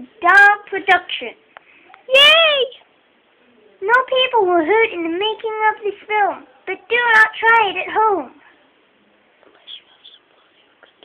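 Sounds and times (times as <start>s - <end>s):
faint whispering: 8.4s - 11.0s.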